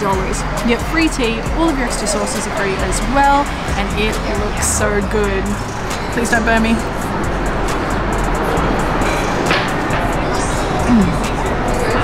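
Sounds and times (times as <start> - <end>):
background music: 0.0 - 12.0
road traffic noise: 0.0 - 12.0.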